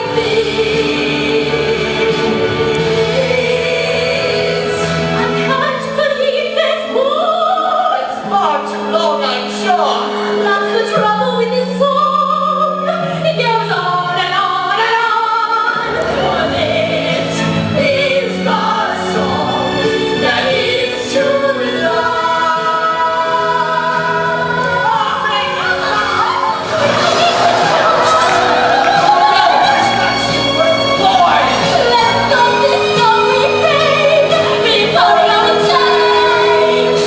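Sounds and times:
musical accompaniment: 0.0s - 37.0s
woman and man singing duet: 0.0s - 37.0s.

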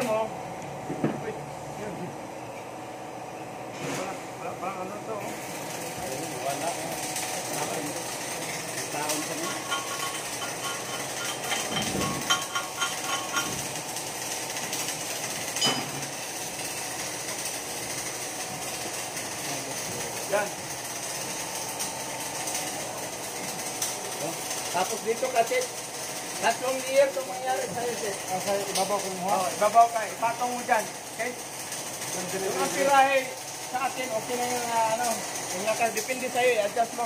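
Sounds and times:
welding arc crackling: 0.0s - 0.8s, 4.0s - 37.0s
workshop machine noise: 0.0s - 37.0s.

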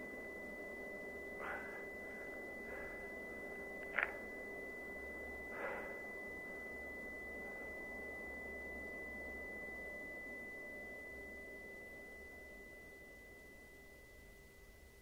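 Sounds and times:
faint low hum: 0.0s - 15.0s
high-pitched ringing tone: 0.0s - 15.0s.

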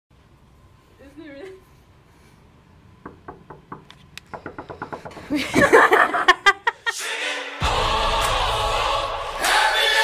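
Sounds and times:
knuckles knocking on wooden door: 3.0s - 5.6s.

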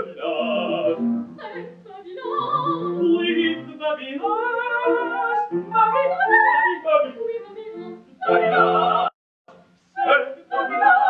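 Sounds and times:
trained voice singing with vibrato: 0.0s - 9.2s, 10.0s - 11.0s.

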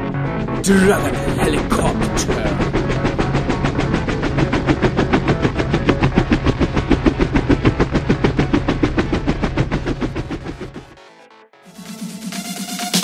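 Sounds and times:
steady low hum: 0.0s - 11.0s
rapid chopping rhythm: 0.6s - 9.1s.

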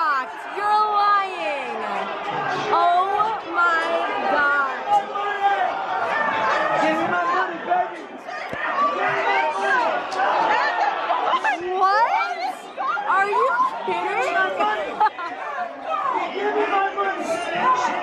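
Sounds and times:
several people talking at once: 0.0s - 18.0s.

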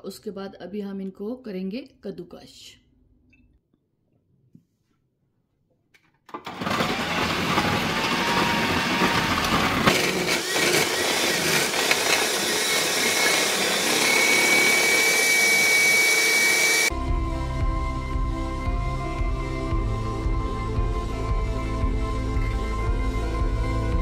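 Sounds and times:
food processor grating carrots: 6.4s - 16.9s.

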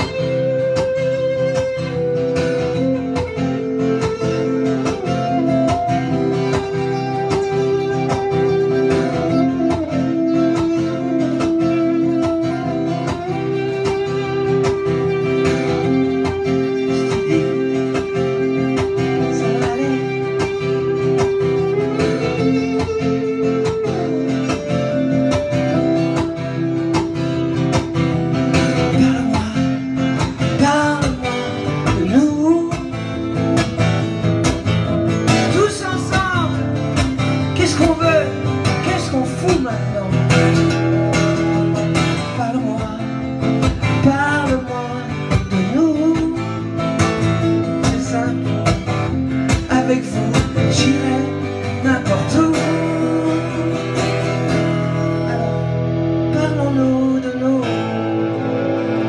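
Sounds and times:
strummed acoustic guitar: 0.0s - 59.0s
man singing: 15.6s - 22.7s, 28.5s - 33.6s, 35.3s - 59.0s.

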